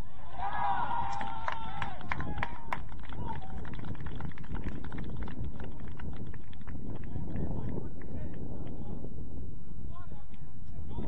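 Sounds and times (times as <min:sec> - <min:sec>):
wind buffeting microphone: 0:00.6 - 0:11.0.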